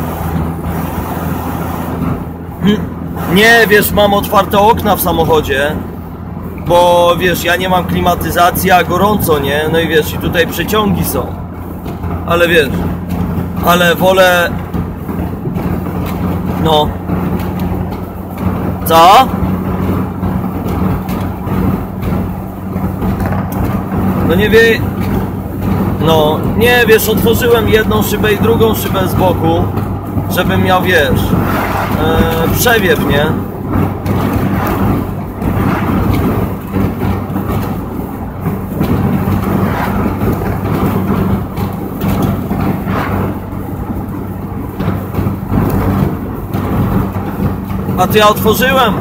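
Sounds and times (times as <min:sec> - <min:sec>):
car engine drone: 0:00.0 - 0:49.0
road noise: 0:00.0 - 0:49.0
wind rush: 0:00.0 - 0:49.0.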